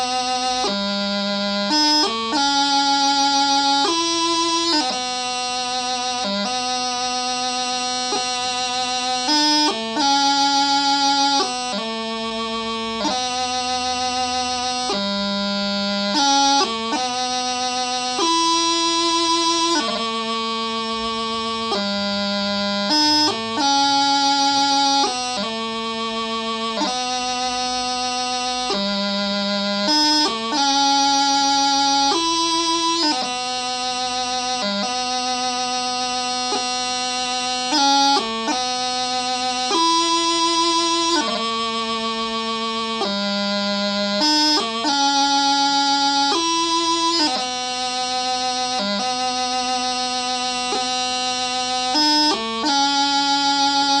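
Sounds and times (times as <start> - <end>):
practice chanter melody: 0.0 - 54.0.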